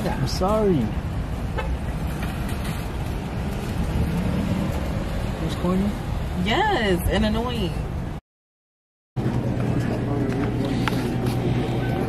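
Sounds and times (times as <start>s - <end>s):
vehicle rumble: 0.0s - 8.2s, 9.2s - 12.0s.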